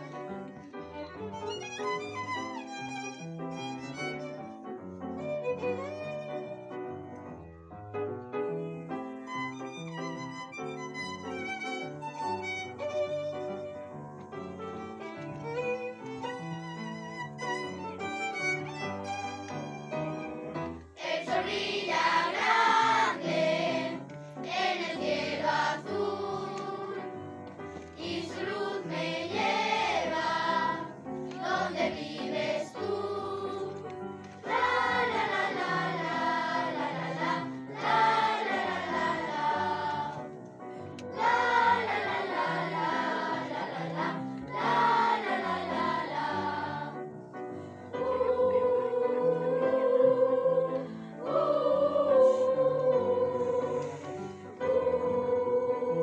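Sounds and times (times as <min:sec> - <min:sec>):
children's choir singing: 0:00.0 - 0:00.7, 0:21.0 - 0:40.4, 0:41.0 - 0:47.2, 0:47.8 - 0:56.0.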